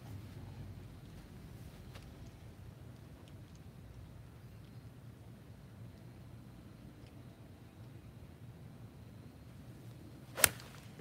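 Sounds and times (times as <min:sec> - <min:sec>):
golf club striking ball: 0:10.4 - 0:10.8.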